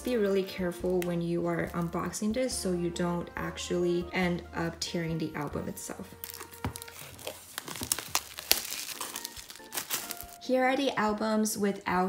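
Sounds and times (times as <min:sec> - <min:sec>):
plastic shrink wrap crinkling: 0:06.1 - 0:10.5.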